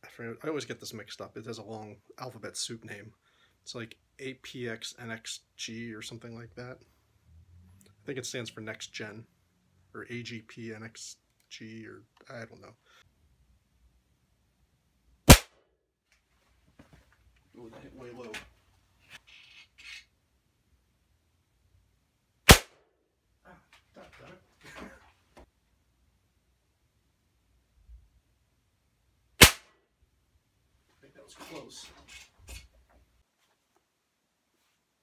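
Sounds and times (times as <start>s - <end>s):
air rifle shot crack: 15.3s - 15.6s, 22.5s - 22.8s, 29.4s - 29.7s.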